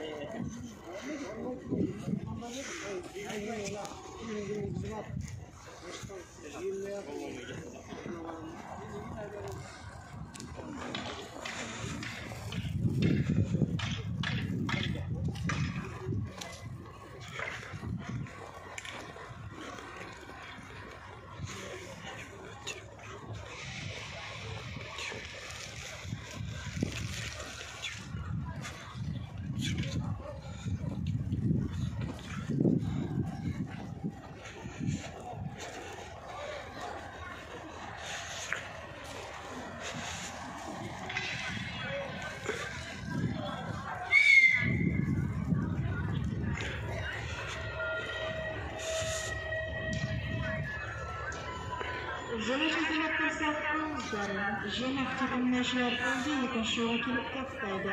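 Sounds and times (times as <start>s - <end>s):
outdoor background noise: 0.0s - 57.9s
people talking indistinctly: 0.0s - 57.9s
footsteps crunching on snow: 45.0s - 56.8s.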